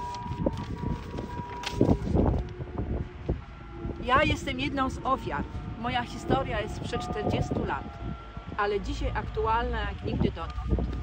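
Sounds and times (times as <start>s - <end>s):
soft music of long held notes: 0.0s - 11.0s
wind buffeting microphone: 0.0s - 11.0s.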